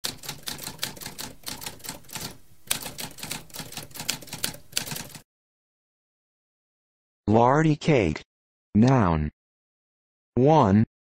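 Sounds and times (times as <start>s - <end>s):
typewriter keystrokes clacking: 0.0s - 5.2s.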